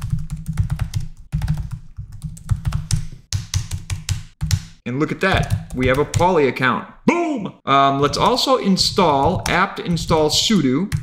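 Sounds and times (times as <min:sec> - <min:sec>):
typing on computer keyboard: 0:00.0 - 0:06.3.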